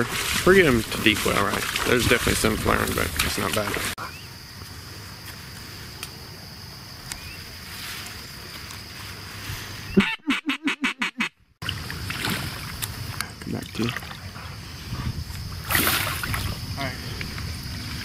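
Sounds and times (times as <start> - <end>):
steady outdoor hiss: 0.0 - 10.2, 10.8 - 18.0
duck quacks: 10.0 - 11.3.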